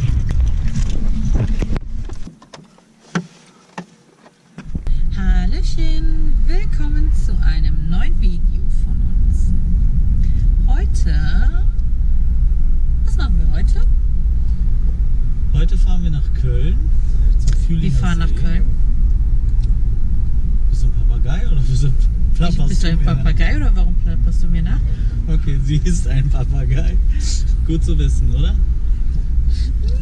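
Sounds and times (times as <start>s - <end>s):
car road and engine rumble: 0.0s - 30.0s
people talking and laughing: 21.1s - 28.4s.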